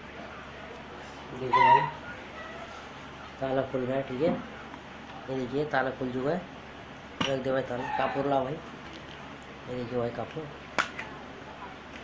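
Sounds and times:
high wavering cry: 1.5s - 2.8s.

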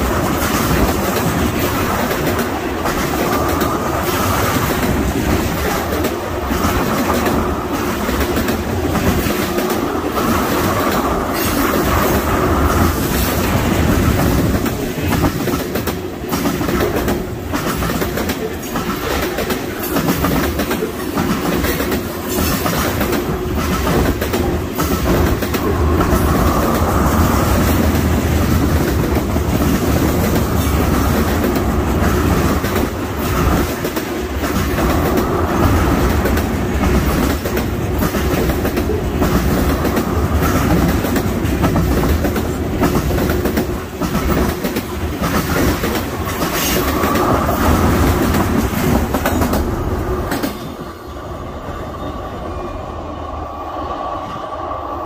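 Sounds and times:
clickety-clack over rail joints: 0.0s - 51.1s
freight train wheels rumbling: 0.0s - 55.0s.

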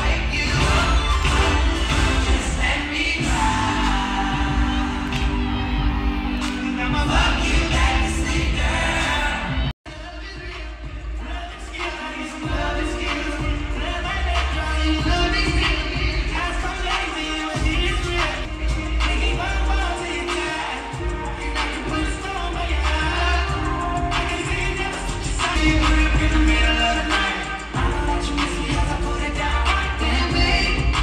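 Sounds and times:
live concert music with singer: 0.0s - 31.0s.

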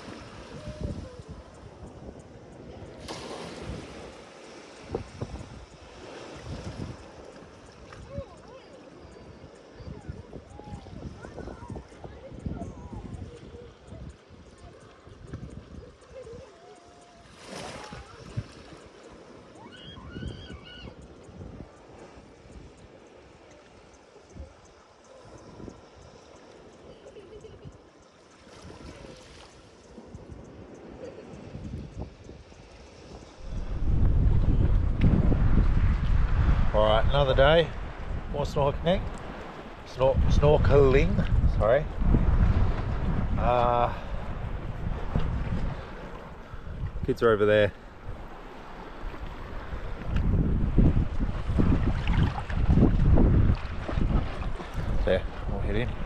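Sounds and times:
faint shallow sea water: 0.0s - 56.0s
small waves washing: 0.0s - 56.0s
wind buffeting microphone: 0.0s - 56.0s
distant high-pitched calls: 18.9s - 21.2s.

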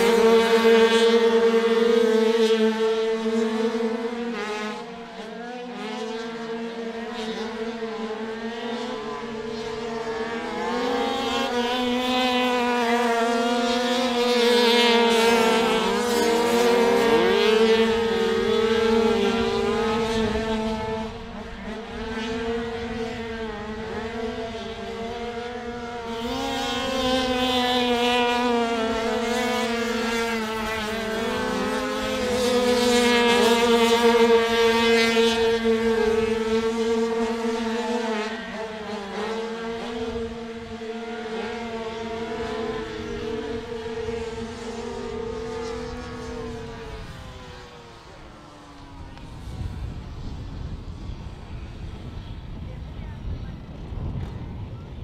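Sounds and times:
motorcycles racing: 0.0s - 55.0s.

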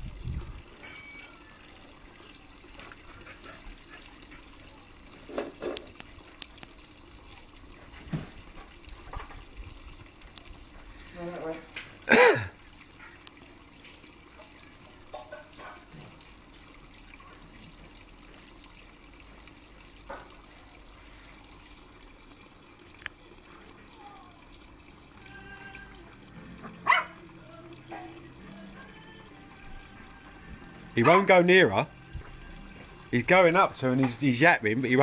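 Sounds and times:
puppy yapping: 26.8s - 27.2s.

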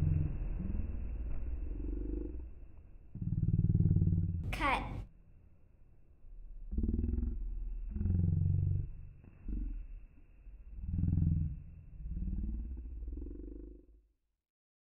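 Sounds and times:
low pulsing growl: 0.0s - 5.0s, 6.2s - 14.1s.

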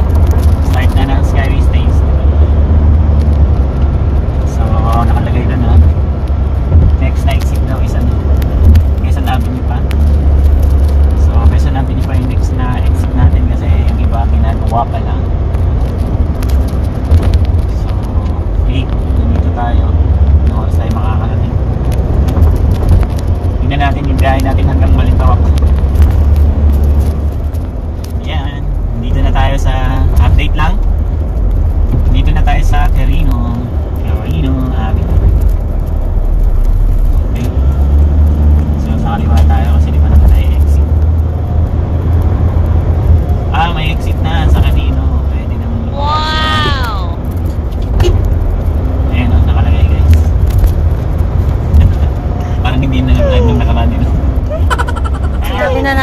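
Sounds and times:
car road noise rumble: 0.0s - 56.0s
brief high-pitched voice: 45.9s - 47.2s, 53.1s - 53.7s.

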